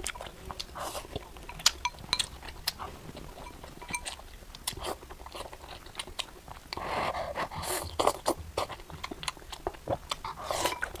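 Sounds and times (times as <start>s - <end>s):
wet crunching chewing: 0.0s - 11.0s.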